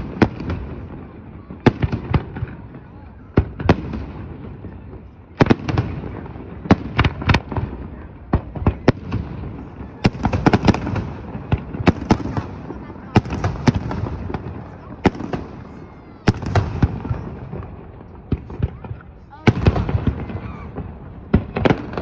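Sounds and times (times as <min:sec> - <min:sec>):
fireworks bangs and cracks: 0:00.0 - 0:22.0.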